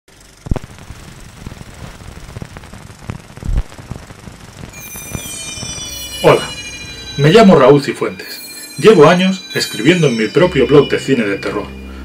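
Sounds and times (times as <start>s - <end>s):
rough noisy bed: 0.1s - 8.4s
whistling tones gliding downward: 4.7s - 12.0s.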